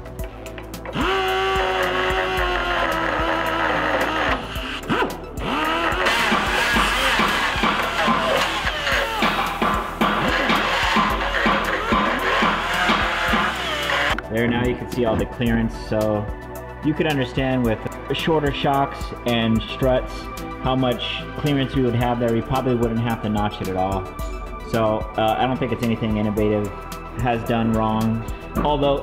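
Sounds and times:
background music: 0.0s - 29.0s
power tool cutting aluminum: 0.8s - 14.2s.

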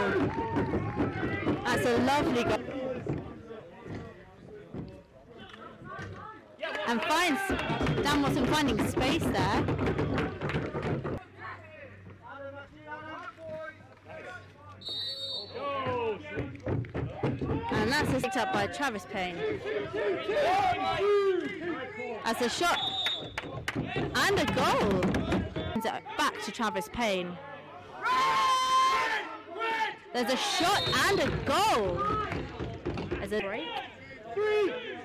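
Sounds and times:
referee's whistle blast: 14.8s - 15.6s, 22.7s - 23.4s, 30.5s - 31.4s
voices shouting: 27.8s - 32.4s.

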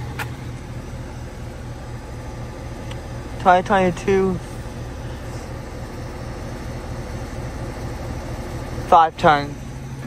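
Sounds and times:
heat pump low hum: 0.0s - 10.0s.

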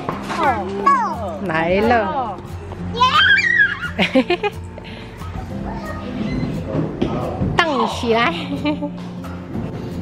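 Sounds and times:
background music: 0.0s - 10.0s
child squealing shout: 3.0s - 4.0s.

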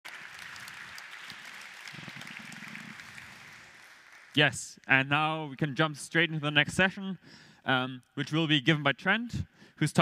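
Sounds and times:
audience applauding: 0.0s - 4.5s.

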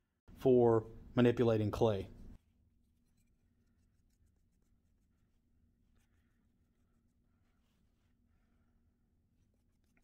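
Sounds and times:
tool scratching soft clay: 2.2s - 10.0s.

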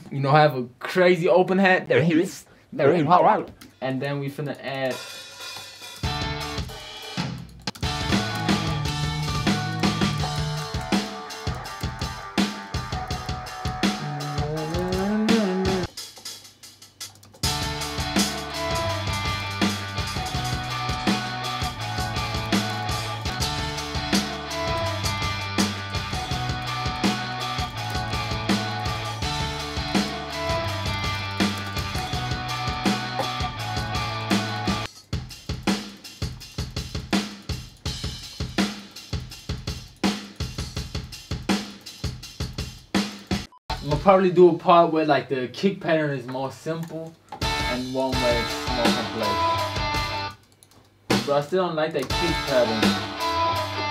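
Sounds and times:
fast rock drum beat: 4.7s - 44.2s, 47.4s - 50.4s, 51.1s - 53.9s
rock guitar melody: 6.1s - 6.7s, 7.8s - 15.9s, 17.4s - 34.9s, 47.4s - 50.4s, 52.1s - 53.9s.

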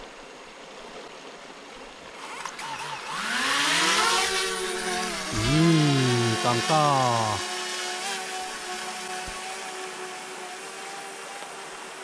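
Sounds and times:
stream running: 0.0s - 12.0s
drone propellers whining: 2.4s - 12.0s.

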